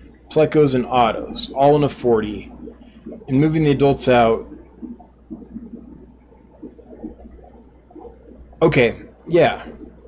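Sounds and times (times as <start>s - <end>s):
aquarium water bubbling: 0.0s - 10.0s
steady low hum: 0.0s - 10.0s.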